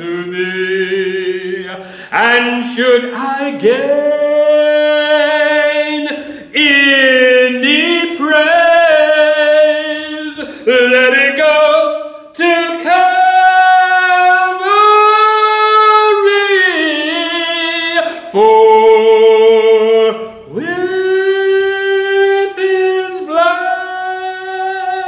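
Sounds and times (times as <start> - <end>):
man singing unaccompanied: 0.0 - 25.0.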